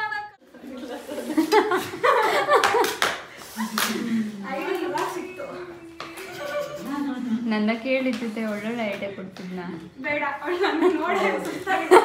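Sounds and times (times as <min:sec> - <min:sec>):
women laughing: 0:00.4 - 0:04.4, 0:06.0 - 0:07.6, 0:10.4 - 0:12.0
hand claps: 0:02.5 - 0:04.0.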